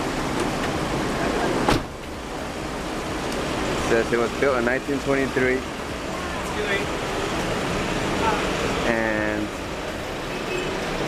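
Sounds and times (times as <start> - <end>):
vehicle and street noise: 0.0 - 11.0
sliding van door shutting: 1.5 - 2.1.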